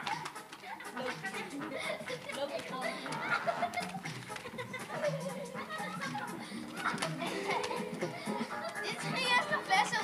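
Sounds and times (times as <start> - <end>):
background music: 0.0 - 10.0
children laughing: 0.0 - 10.0
children calling out: 4.6 - 10.0.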